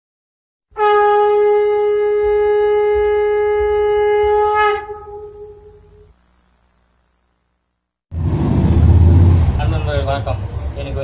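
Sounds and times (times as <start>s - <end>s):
conch shell blown: 0.7s - 6.2s.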